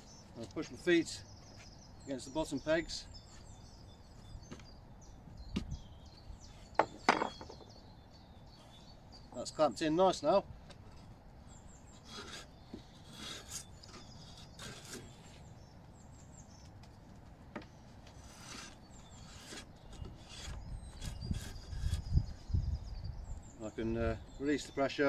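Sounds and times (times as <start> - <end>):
drawknife scraping wood: 11.9 - 15.5, 18.1 - 22.2.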